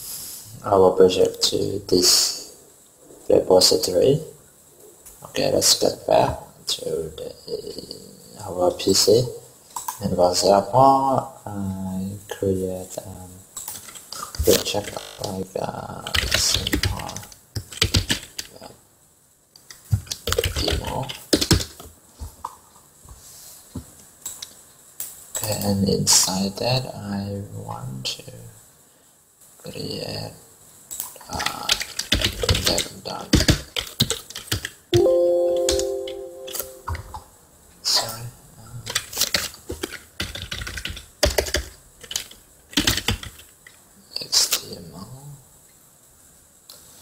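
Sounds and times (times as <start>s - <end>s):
typing on computer keyboard: 16.0s - 18.5s, 19.9s - 21.8s, 30.9s - 34.8s, 38.9s - 43.8s.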